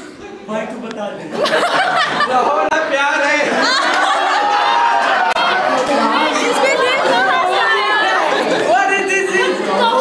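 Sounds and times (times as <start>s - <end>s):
people chattering excitedly: 0.0s - 10.0s
people laughing: 1.2s - 10.0s.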